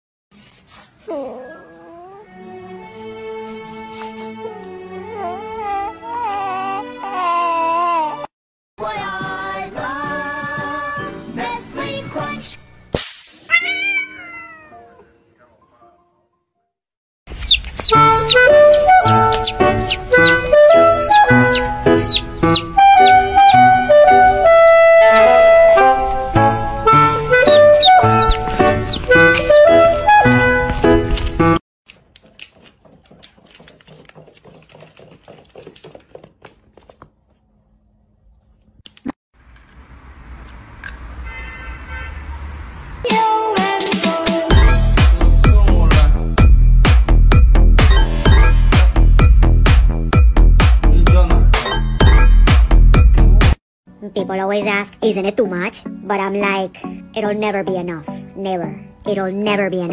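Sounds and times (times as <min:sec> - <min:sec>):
cat meowing: 0:13.5 - 0:15.1, 0:17.4 - 0:23.6.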